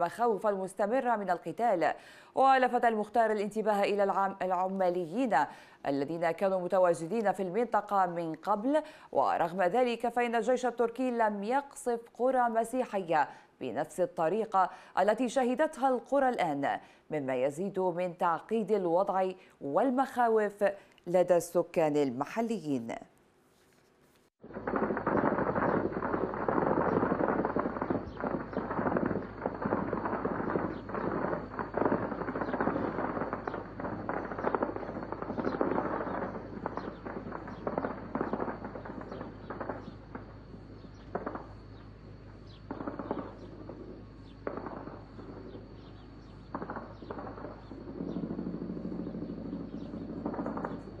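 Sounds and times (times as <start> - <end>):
single gunshots: 24.5 - 40.3, 40.9 - 41.6, 42.5 - 51.0
automatic gunfire: 46.5 - 51.0.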